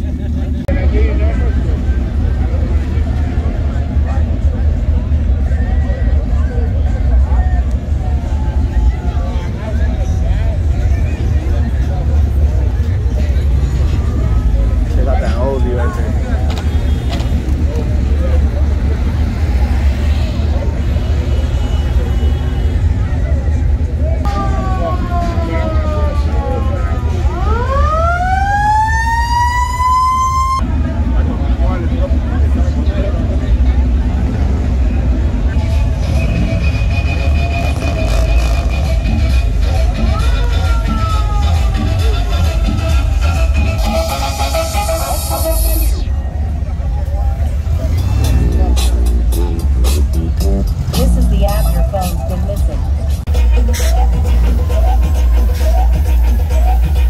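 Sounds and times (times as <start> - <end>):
cars rumbling: 0.0 - 57.0
siren-like wail: 24.3 - 30.6.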